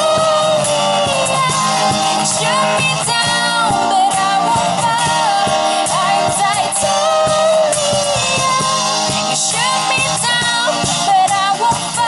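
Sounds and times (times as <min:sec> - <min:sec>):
cajon beat: 0:00.0 - 0:12.0
strummed acoustic guitar: 0:00.0 - 0:12.0
woman singing: 0:00.0 - 0:12.0.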